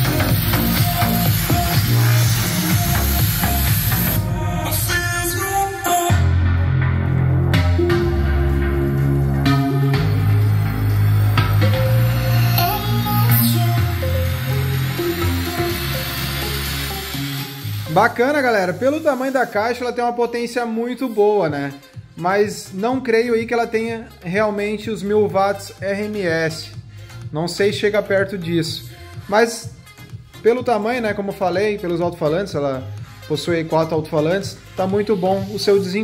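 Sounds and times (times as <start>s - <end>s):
electronic dance music: 0.0s - 36.0s.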